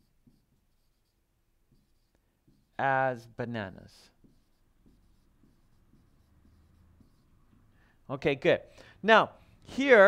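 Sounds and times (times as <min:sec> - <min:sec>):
marker scratching on whiteboard: 0:00.0 - 0:02.9, 0:03.8 - 0:07.7.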